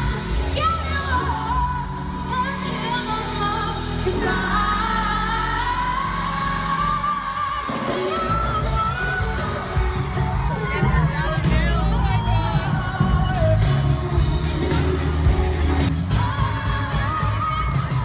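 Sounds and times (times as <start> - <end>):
live pop band: 0.0 - 18.0.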